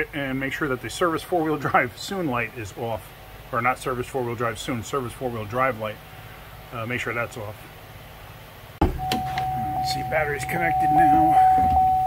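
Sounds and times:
abrupt thump: 0:08.8 - 0:09.4
steady high-pitched tone: 0:08.9 - 0:12.0.

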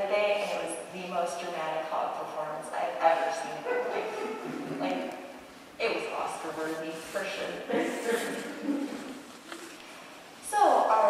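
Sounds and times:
person talking: 0:00.0 - 0:05.2.

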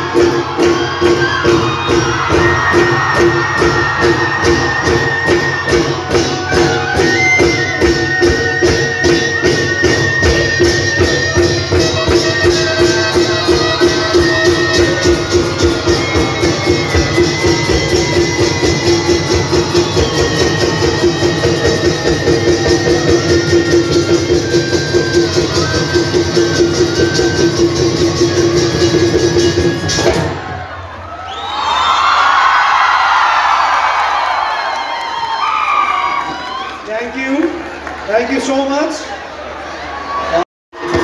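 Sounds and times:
high held melody: 0:00.0 - 0:30.3
folk drums and cymbals: 0:00.0 - 0:31.0, 0:40.8 - 0:41.0.

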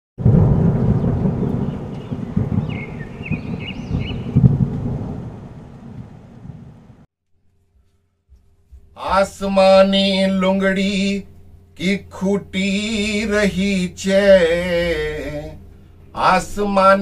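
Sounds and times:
rain: 0:00.2 - 0:07.1
rumbling thunder: 0:00.2 - 0:07.1
high chirps: 0:01.0 - 0:04.4.

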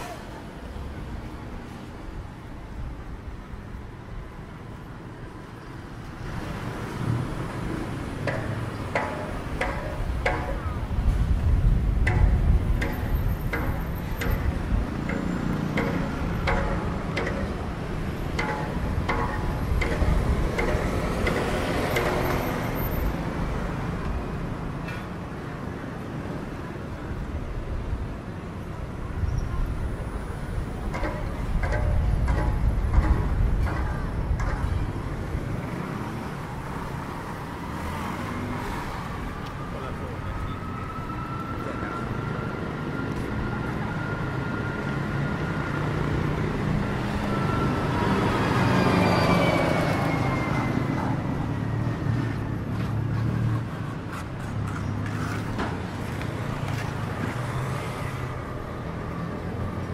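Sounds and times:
cars and motorbikes passing: 0:00.0 - 0:59.9.

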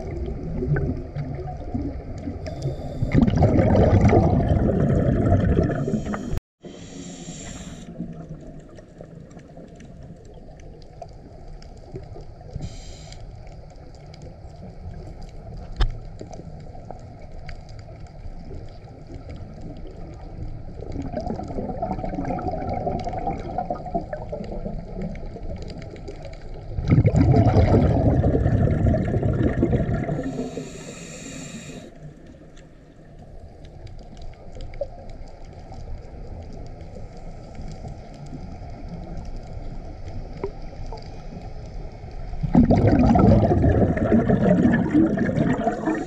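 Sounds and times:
exhaled bubbles gurgling underwater: 0:00.0 - 0:46.0
regulator inhalation hiss: 0:05.8 - 0:08.0, 0:12.6 - 0:13.2, 0:30.2 - 0:32.0.

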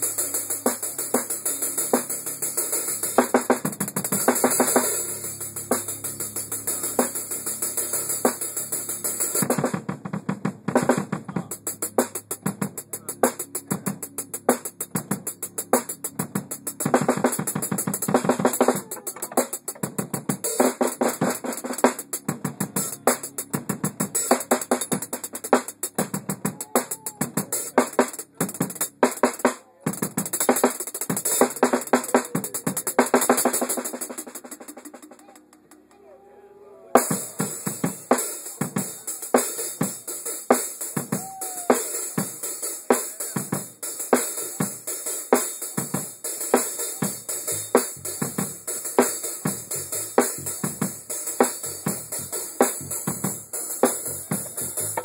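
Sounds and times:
drum kit solo: 0:00.0 - 0:35.5, 0:37.0 - 0:55.0.

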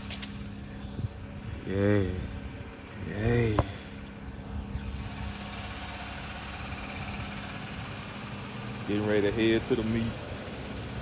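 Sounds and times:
pickup truck engine idling: 0:03.5 - 0:11.0.

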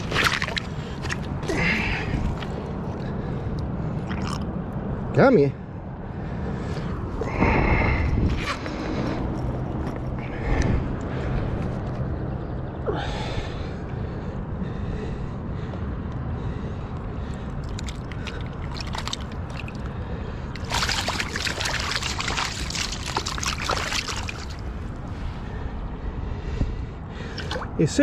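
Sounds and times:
river water running over stones: 0:00.0 - 0:02.6, 0:17.6 - 0:19.9, 0:20.6 - 0:24.8
water splashing and sloshing: 0:00.0 - 0:05.0, 0:17.2 - 0:25.6, 0:27.1 - 0:28.0.

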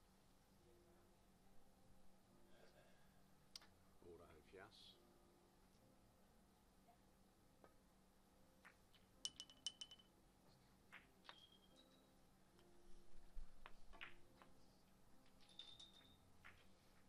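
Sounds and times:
billiard balls clicking: 0:08.6 - 0:10.1, 0:13.4 - 0:17.0.

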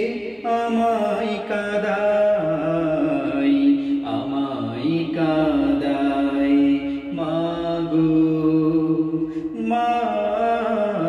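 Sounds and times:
hummed vocal drone: 0:00.0 - 0:11.0
man singing: 0:00.0 - 0:11.0.

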